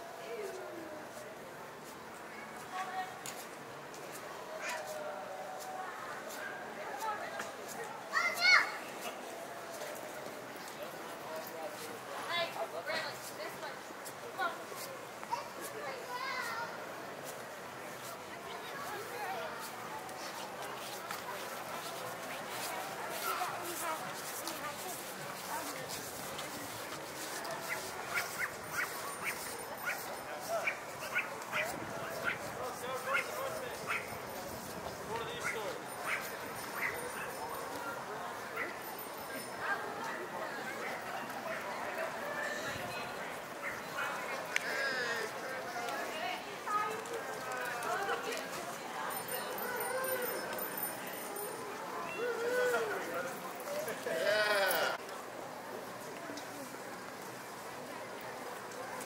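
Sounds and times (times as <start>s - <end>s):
murmur of people talking: 0.0s - 59.0s
footsteps on pavement: 19.6s - 37.9s.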